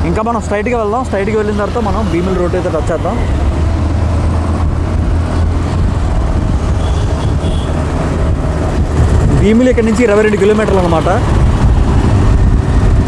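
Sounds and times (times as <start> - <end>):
motorcycle engine hum: 0.0 - 13.0
wind and road noise: 0.0 - 13.0.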